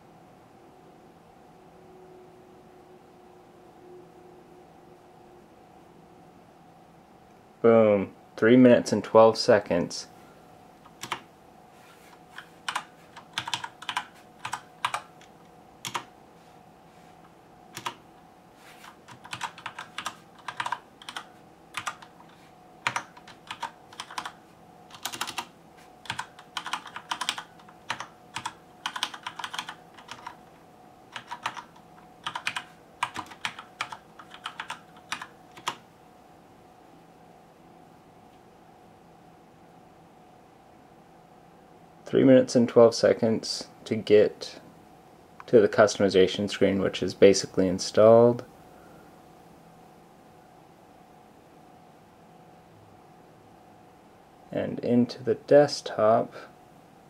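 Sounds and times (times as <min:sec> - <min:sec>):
faint steady hum: 0:00.0 - 0:57.0
typing on computer keyboard: 0:10.8 - 0:11.3, 0:12.3 - 0:16.1, 0:17.7 - 0:18.0, 0:18.8 - 0:30.4, 0:31.1 - 0:35.8.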